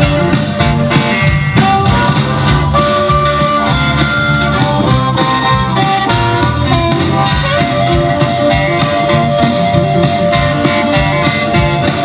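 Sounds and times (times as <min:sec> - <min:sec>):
bass guitar: 0:00.0 - 0:12.0
blues harmonica bending notes: 0:00.0 - 0:12.0
electric guitar: 0:00.0 - 0:12.0
steady drum beat: 0:00.0 - 0:12.0.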